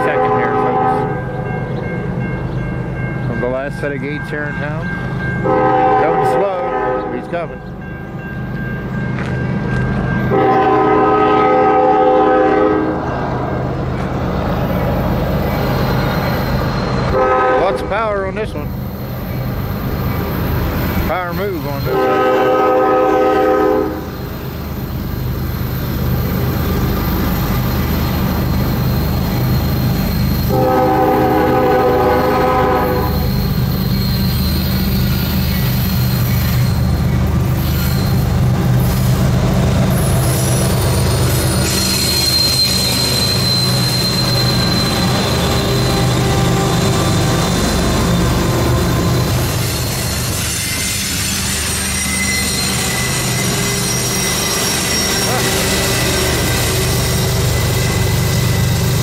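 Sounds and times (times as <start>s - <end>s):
locomotive air horn blasts: 0.0s - 1.2s, 5.4s - 7.2s, 10.3s - 13.0s, 17.1s - 17.9s, 21.9s - 24.1s, 30.5s - 33.3s.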